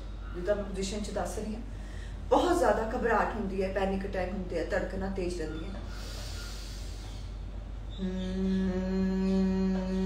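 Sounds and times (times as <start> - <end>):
woman speaking: 0.4 - 5.9
woman breathing in through nose: 5.9 - 7.4.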